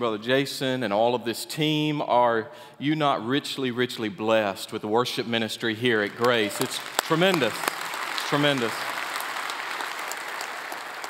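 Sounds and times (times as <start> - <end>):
congregation applauding: 5.9 - 11.0.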